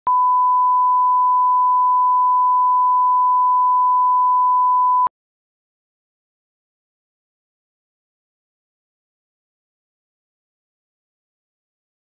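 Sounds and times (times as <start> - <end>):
steady reference tone beep: 0.1 - 5.1.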